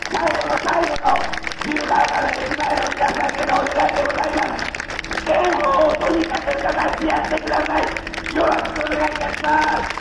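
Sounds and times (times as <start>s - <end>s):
crowd noise: 0.0s - 10.0s
indistinct voices: 0.0s - 10.0s.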